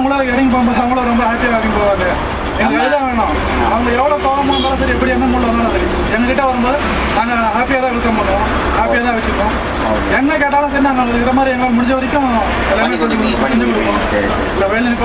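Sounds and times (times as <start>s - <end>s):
bus engine rumble: 0.0s - 15.0s
men talking: 0.0s - 15.0s
road noise: 0.0s - 15.0s.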